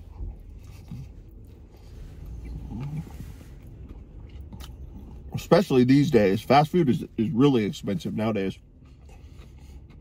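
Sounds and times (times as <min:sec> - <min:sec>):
low rumble in vehicle cab: 0:00.0 - 0:10.0
man chewing: 0:00.0 - 0:10.0.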